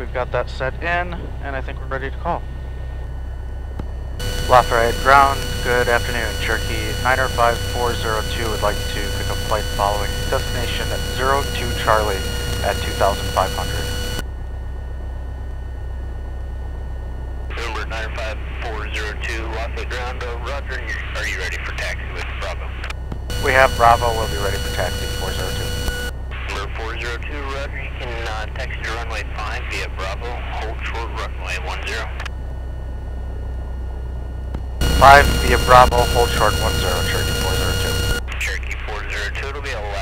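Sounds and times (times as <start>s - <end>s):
faint steady whine: 0.0s - 40.0s
aircraft engine idling: 4.2s - 14.2s, 23.3s - 26.1s, 34.8s - 38.2s
radio hiss: 4.2s - 14.2s, 17.5s - 32.1s, 34.8s - 40.0s.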